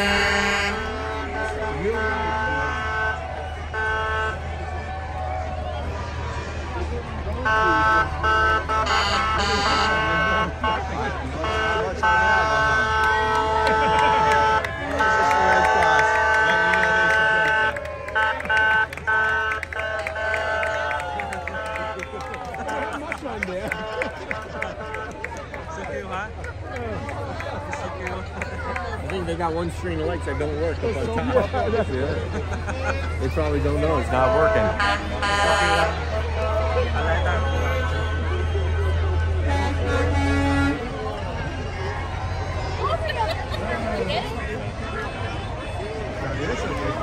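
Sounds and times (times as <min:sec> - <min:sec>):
vehicle horns blasting: 0:00.0 - 0:04.8, 0:07.3 - 0:25.4, 0:33.2 - 0:43.8
crowd voices: 0:00.0 - 0:47.0.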